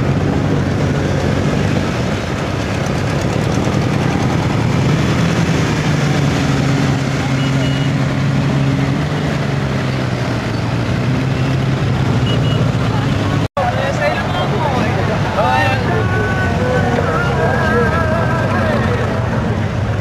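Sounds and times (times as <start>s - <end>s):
motorcycle engines at low revs: 0.0s - 20.0s
background voices: 12.8s - 19.8s.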